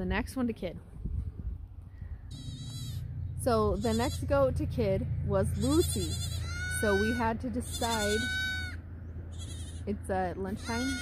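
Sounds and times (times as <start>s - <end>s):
wind buffeting microphone: 0.0s - 2.4s
goat bleating: 2.3s - 4.5s, 5.5s - 11.0s.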